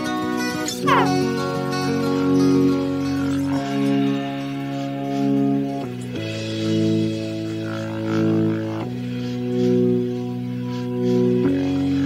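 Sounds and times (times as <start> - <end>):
instrumental rock chords: 0.0 - 12.0.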